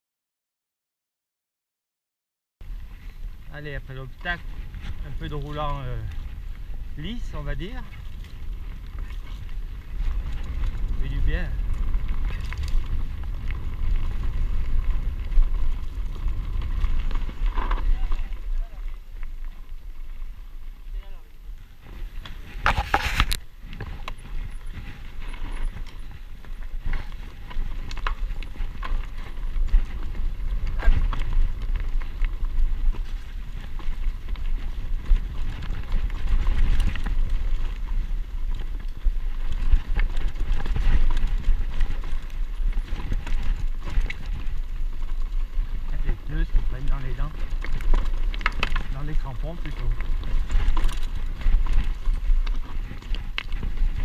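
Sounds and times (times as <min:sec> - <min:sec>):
bike clicks and rattles: 0:02.6 - 0:54.0
bike tyres on dirt trail: 0:02.6 - 0:54.0
wind on camera microphone: 0:02.6 - 0:54.0.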